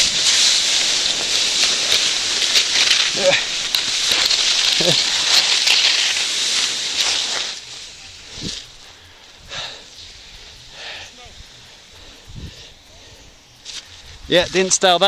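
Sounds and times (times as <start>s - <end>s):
skis scraping over icy snow: 0.0s - 9.1s
rustling in snow: 0.0s - 14.9s.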